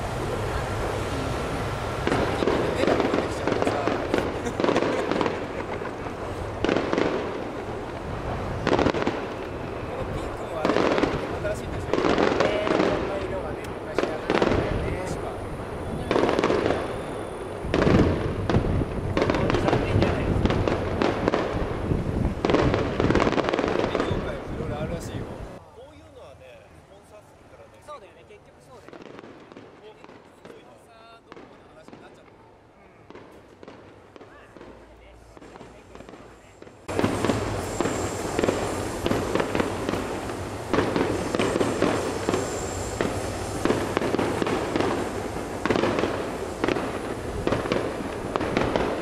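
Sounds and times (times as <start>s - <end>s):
firework shells bursting: 0.0s - 24.5s, 33.0s - 49.0s.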